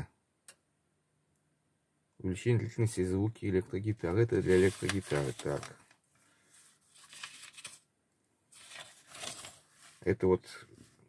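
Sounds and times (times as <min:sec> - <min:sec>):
magazine pages rustling: 0:04.3 - 0:07.9, 0:08.5 - 0:10.2.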